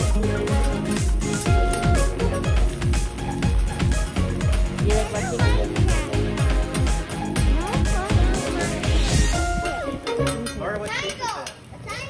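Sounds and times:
faint background music: 0.0 - 12.0
high-pitched voices calling out: 4.6 - 12.0.

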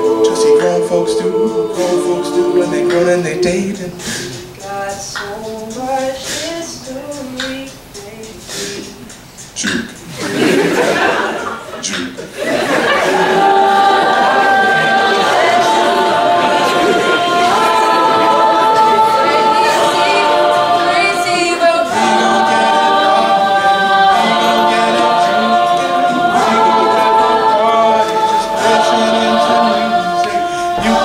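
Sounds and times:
a cappella group singing harmony: 0.0 - 31.0.

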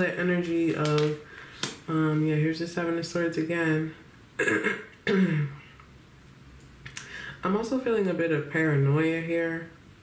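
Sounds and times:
woman clearing her throat: 4.4 - 5.7.

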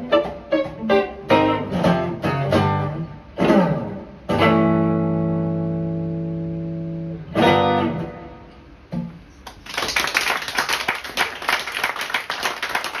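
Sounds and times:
guitar chord ringing: 0.0 - 8.6
audience applauding: 9.4 - 13.0.

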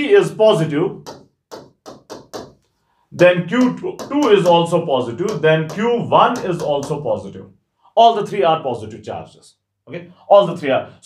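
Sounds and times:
pen tapping on writing board: 1.0 - 7.1.

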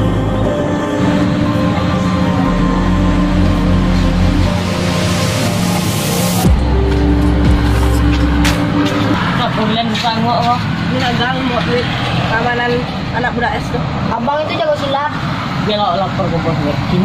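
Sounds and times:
background music: 0.0 - 12.3
road traffic: 0.0 - 17.0
people talking: 9.4 - 17.0.

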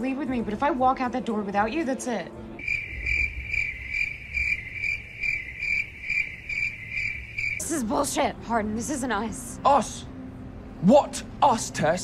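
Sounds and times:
crickets chirping: 2.6 - 7.9.

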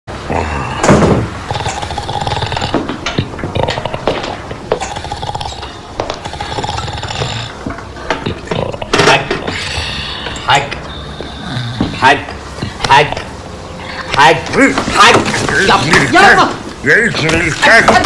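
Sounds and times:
man snoring loudly: 0.3 - 2.8, 4.8 - 5.6, 6.2 - 7.6.

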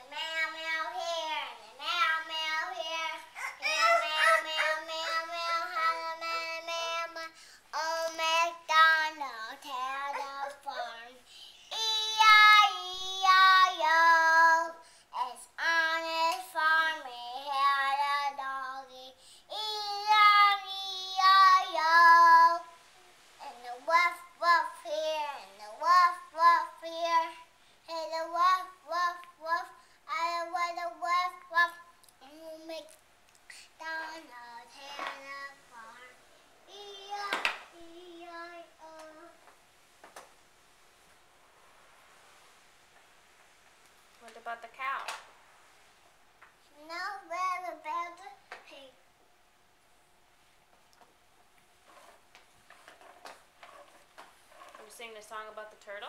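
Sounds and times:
child singing wordless tune: 0.0 - 39.5, 46.7 - 49.0.

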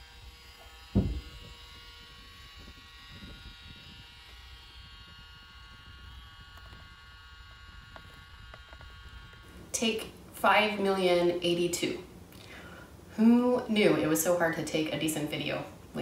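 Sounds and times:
small motors buzzing: 0.0 - 11.0
thump: 0.9 - 1.6.

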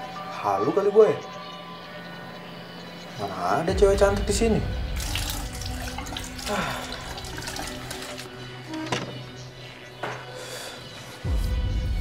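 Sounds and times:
soft background music: 0.0 - 12.0
tap water running into basin: 5.0 - 8.3.

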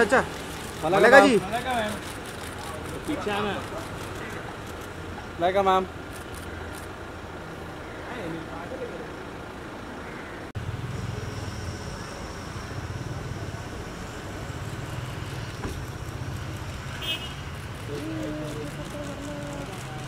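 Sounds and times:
street traffic: 0.0 - 20.0
vehicle engine running: 0.0 - 20.0.

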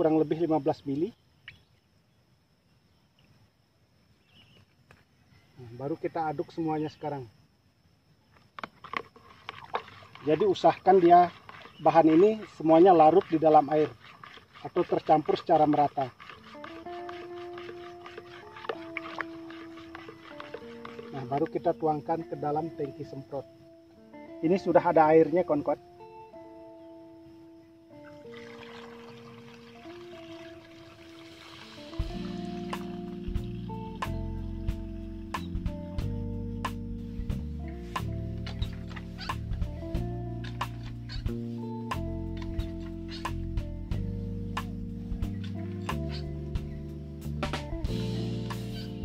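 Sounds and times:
stick knocking in plastic bucket: 16.7 - 21.6
liquid pouring into tank: 28.3 - 33.6.

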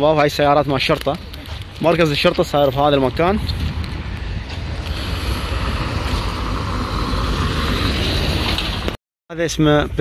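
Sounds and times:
street noise hiss: 0.0 - 9.0
wind buffeting microphone: 0.8 - 9.0.

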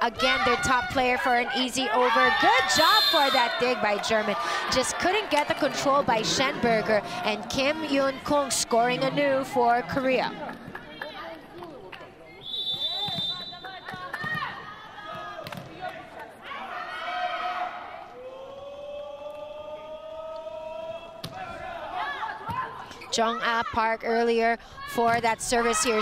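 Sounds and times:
spectators' voices and calls: 0.0 - 26.0
high whistle-like tone: 12.4 - 13.6.

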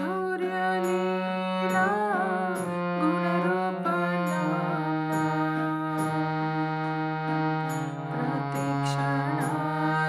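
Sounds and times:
harmonium melody: 0.0 - 10.0
person singing: 0.0 - 10.0.

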